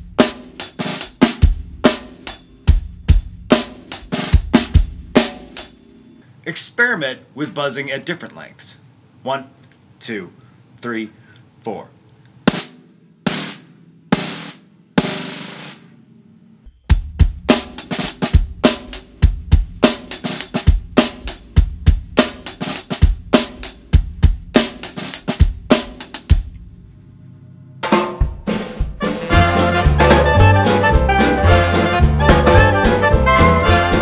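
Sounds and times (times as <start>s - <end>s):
music with bass line: 0.0s - 5.7s, 16.8s - 24.6s, 28.2s - 34.0s
snare drum buzz strokes: 0.0s - 5.8s, 12.4s - 15.9s, 16.7s - 26.5s, 27.8s - 34.0s
kick drum: 16.9s - 17.5s, 20.7s - 22.2s, 24.0s - 24.5s.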